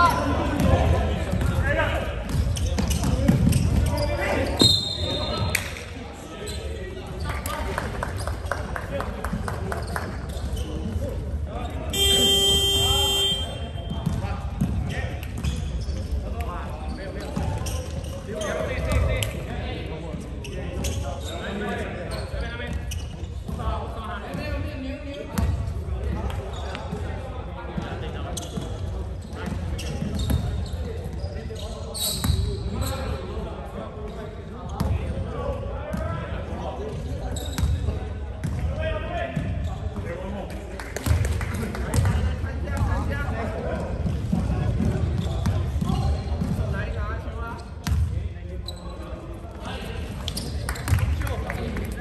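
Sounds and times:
basketballs bouncing: 0:00.0 - 0:04.7, 0:11.8 - 0:16.2, 0:41.9 - 0:46.8, 0:47.8 - 0:48.1
voices echoing: 0:00.0 - 0:52.0
scoreboard buzzer: 0:12.0 - 0:13.6.

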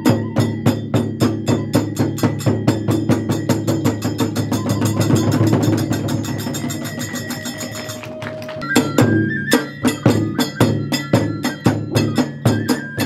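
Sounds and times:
fast drum strokes: 0:00.0 - 0:13.0
hand cymbal strokes: 0:00.0 - 0:13.0
held flute line: 0:00.0 - 0:13.0.

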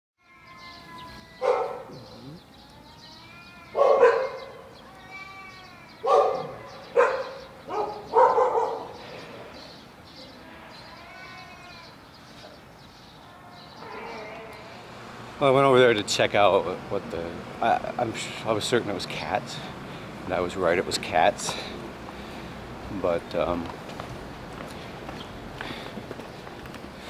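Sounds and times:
cats yowling: 0:00.2 - 0:09.0, 0:13.2 - 0:14.8.

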